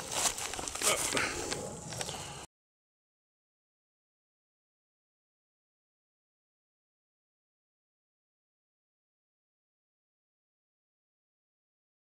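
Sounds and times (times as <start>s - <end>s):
footsteps in dry grass: 0.0s - 2.4s.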